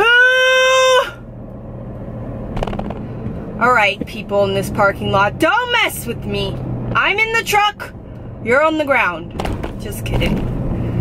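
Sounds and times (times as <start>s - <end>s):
woman yelling: 0.0s - 1.2s.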